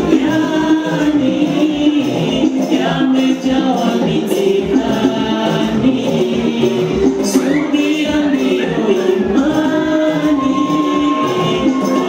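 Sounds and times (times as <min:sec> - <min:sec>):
men singing together: 0:00.0 - 0:12.0
music: 0:00.0 - 0:12.0.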